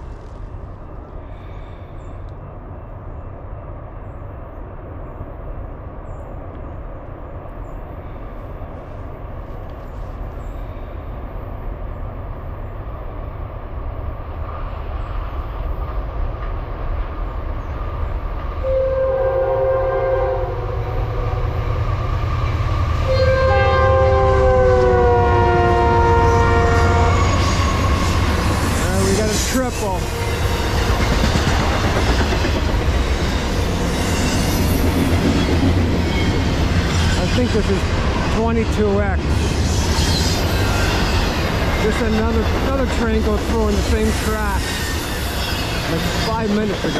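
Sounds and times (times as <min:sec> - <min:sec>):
diesel locomotive rumble: 0:15.0 - 0:46.9
locomotive multi-chime horn: 0:23.1 - 0:28.1.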